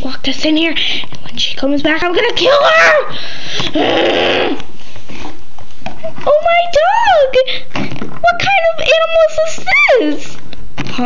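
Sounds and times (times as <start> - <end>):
person growling: 3.6 - 4.7.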